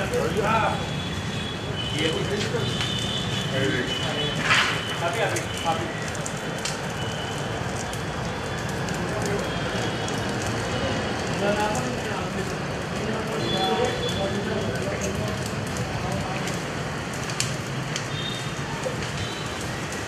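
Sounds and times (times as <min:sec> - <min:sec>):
wood fire crackling: 0:00.0 - 0:20.0.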